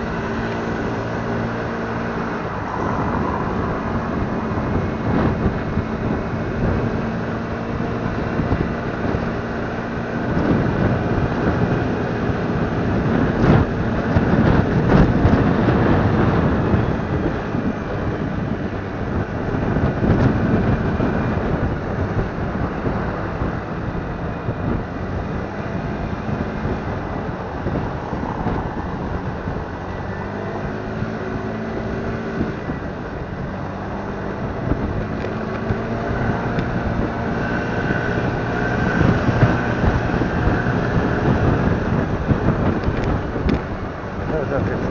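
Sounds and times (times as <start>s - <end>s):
motor scooter engine humming: 0.0s - 44.9s
road noise: 0.0s - 44.9s
surrounding traffic: 0.0s - 44.9s
wind on microphone: 0.0s - 44.9s.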